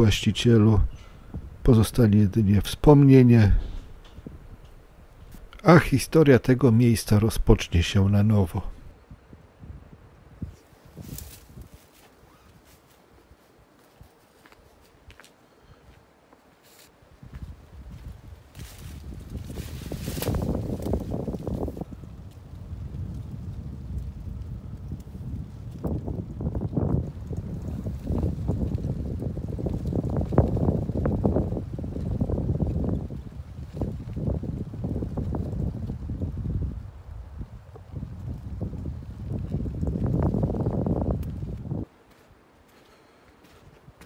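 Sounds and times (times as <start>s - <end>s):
wind buffeting microphone: 0.0s - 12.8s, 17.1s - 41.9s.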